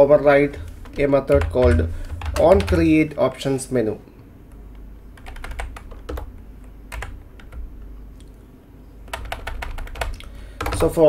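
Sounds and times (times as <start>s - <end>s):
computer keyboard typing: 0.5s - 3.2s, 5.2s - 7.9s, 9.0s - 11.0s.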